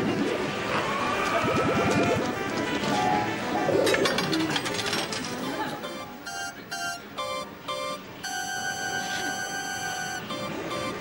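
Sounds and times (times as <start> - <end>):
two-note electronic beeps: 5.4 - 11.0
long steady electronic tone: 5.8 - 11.0.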